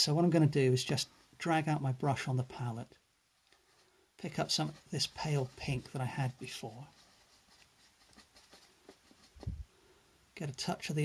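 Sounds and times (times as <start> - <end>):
paintbrush clicks and scrapes: 3.4 - 9.7.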